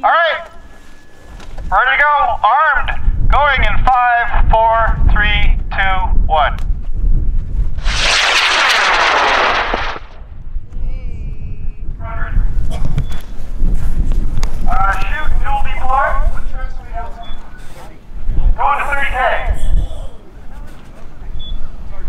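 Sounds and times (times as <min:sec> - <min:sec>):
rocket motor hissing roar: 0:07.8 - 0:10.2
short rising and falling whoops: 0:07.8 - 0:10.2.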